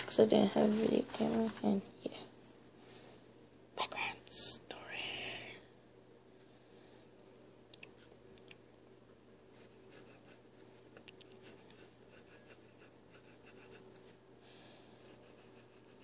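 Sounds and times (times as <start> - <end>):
low steady hum: 0.0 - 16.0
pencil scratching on paper: 9.5 - 14.2, 15.0 - 16.0.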